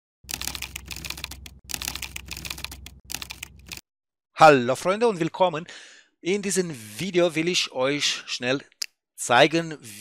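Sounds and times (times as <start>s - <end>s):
keyboard typing clatter: 0.3s - 3.8s.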